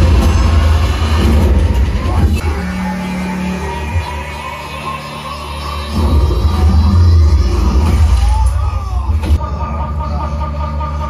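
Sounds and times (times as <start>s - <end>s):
action film score with deep bass: 0.0s - 11.0s.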